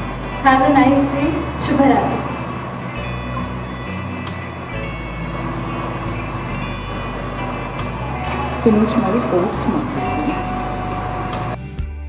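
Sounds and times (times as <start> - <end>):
steady high tone: 0.0 - 11.6
calm background music: 0.0 - 12.0.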